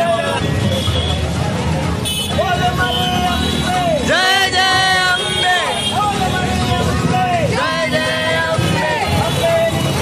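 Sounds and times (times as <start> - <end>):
low street noise: 0.0 - 10.0.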